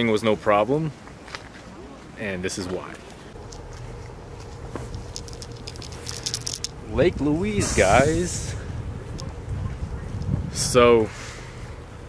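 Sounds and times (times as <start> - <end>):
faint hum: 3.2 - 12.0
low steady rumble: 3.3 - 12.0.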